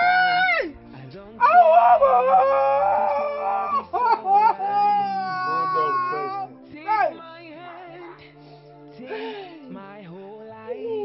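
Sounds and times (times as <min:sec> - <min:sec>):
woman wailing and sobbing: 0:00.0 - 0:00.8, 0:01.4 - 0:08.4, 0:09.0 - 0:09.8.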